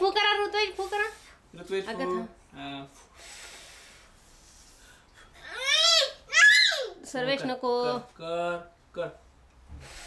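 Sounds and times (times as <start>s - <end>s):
child blowing at candle: 3.2s - 4.8s, 9.7s - 10.0s.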